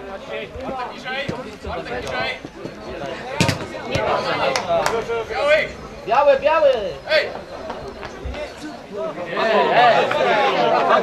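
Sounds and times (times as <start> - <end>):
players shouting: 8.3 - 11.0.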